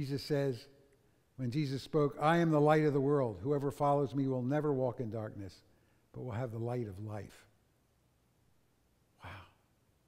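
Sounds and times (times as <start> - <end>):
man sighing: 9.2 - 9.6.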